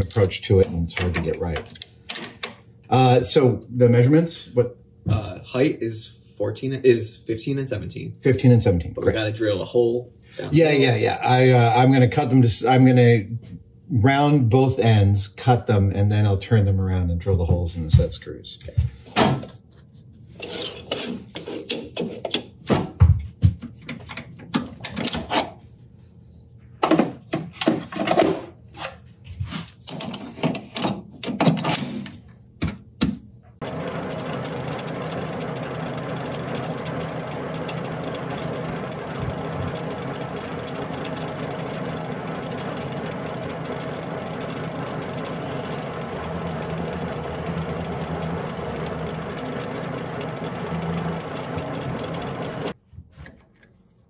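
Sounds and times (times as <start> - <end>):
metal lathe running: 33.6 - 52.8.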